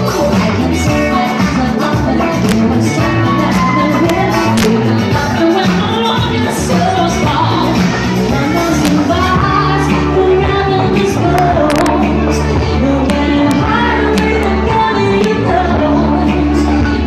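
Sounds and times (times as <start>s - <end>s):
guitar: 0.0s - 17.0s
live band music: 0.0s - 17.0s
person singing: 0.0s - 17.0s.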